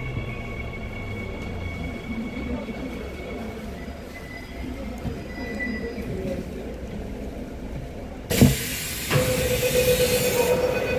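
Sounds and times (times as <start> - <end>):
train low rumble: 0.0 - 10.9
train doors air hiss: 8.3 - 10.9.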